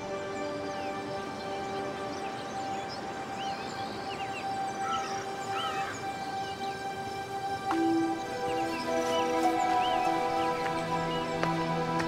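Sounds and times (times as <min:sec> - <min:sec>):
birds chirping: 0:00.0 - 0:12.0
soft sustained music: 0:00.0 - 0:12.0.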